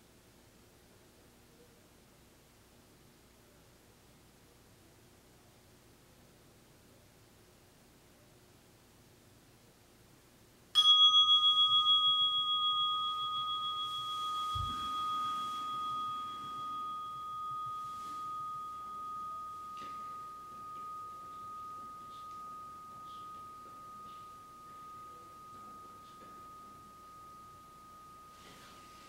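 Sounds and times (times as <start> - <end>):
meditation bell ringing: 10.8 - 29.0.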